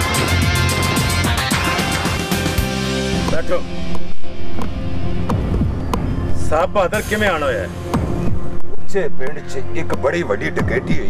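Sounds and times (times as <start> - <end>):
deep bass hit: 0.0 - 8.7.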